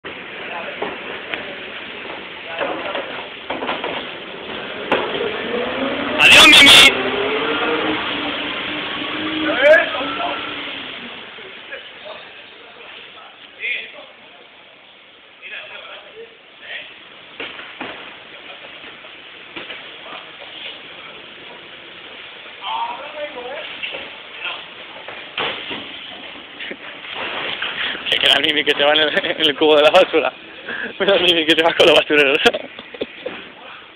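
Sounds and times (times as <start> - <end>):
outdoor street noise: 0.0 - 33.9
garbage truck running: 0.1 - 11.8
voices: 6.1 - 7.0, 9.2 - 17.0.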